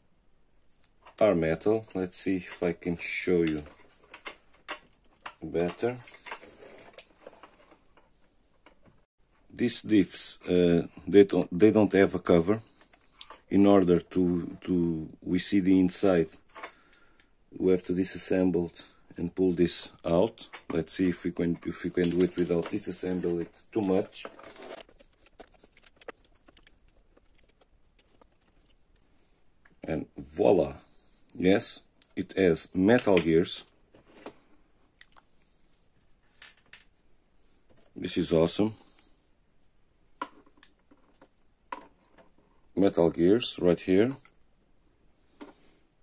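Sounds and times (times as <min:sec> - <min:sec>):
small parts clicking and tapping: 0:03.4 - 0:08.9
plastic parts clicking and rattling: 0:03.4 - 0:09.0, 0:20.1 - 0:29.0.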